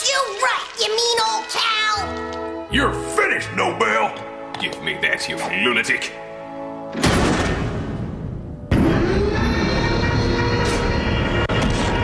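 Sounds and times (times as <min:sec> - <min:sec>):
child speaking: 0:00.0 - 0:02.3
cartoon background music: 0:00.0 - 0:12.0.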